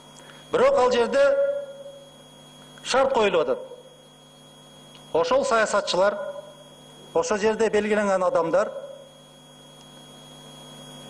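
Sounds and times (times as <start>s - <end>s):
quiet steady hum: 0.0s - 11.0s.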